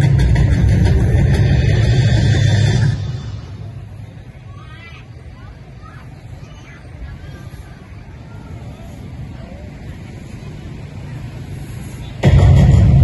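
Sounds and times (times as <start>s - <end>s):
low rumble of traffic: 0.0s - 13.0s
faint voices of people: 0.7s - 13.0s.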